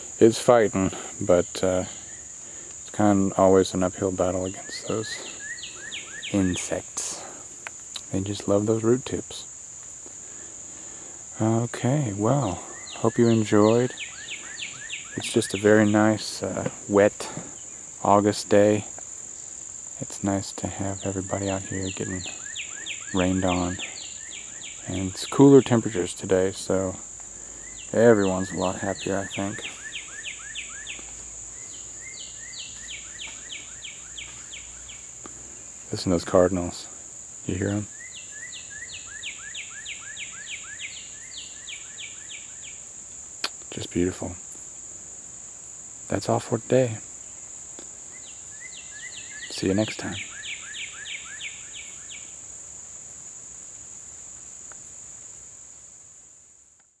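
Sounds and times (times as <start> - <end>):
high-pitched insect drone: 0.0 - 56.1
bird singing whistled notes: 4.5 - 6.6, 12.4 - 16.0, 21.0 - 25.9, 27.6 - 35.0, 37.8 - 42.8, 48.1 - 52.3.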